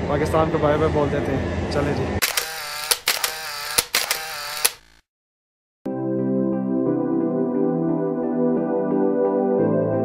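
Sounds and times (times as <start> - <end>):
sharp clicks: 2.2 - 5.0.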